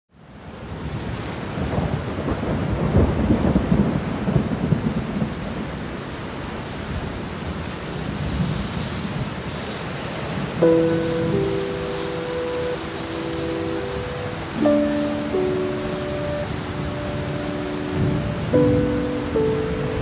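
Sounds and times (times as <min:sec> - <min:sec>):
rain: 0:00.1 - 0:20.0
thunder rumbling: 0:01.5 - 0:05.9, 0:10.3 - 0:20.0.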